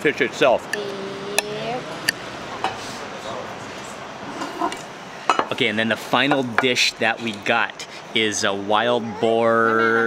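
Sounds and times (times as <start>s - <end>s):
restaurant background noise: 0.0s - 10.0s
person humming: 0.8s - 2.1s.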